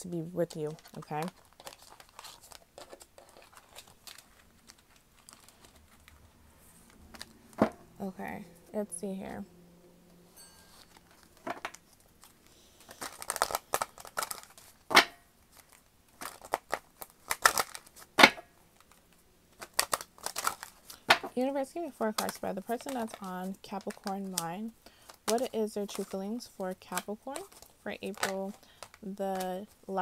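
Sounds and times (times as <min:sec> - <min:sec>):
cards rustling and clicking: 0:00.5 - 0:07.8, 0:10.6 - 0:30.0.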